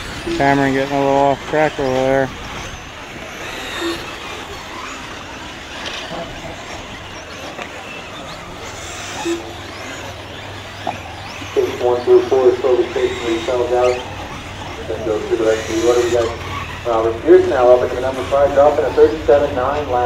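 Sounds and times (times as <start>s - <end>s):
electric motor whines: 0.0s - 20.0s
rc cars on dirt track: 0.0s - 20.0s.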